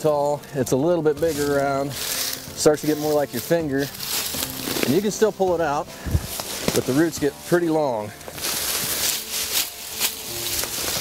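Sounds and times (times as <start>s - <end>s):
faint held music notes: 0.0s - 11.0s
roots and leaves crackling: 0.0s - 11.0s.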